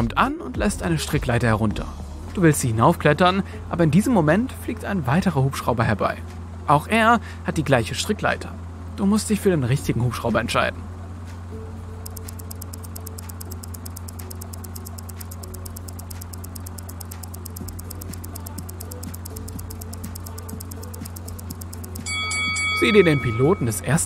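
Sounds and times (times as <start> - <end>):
stopwatch ticking fast: 12.0 - 22.1
low hum: 12.1 - 22.1
bell-like chime: 22.0 - 23.8.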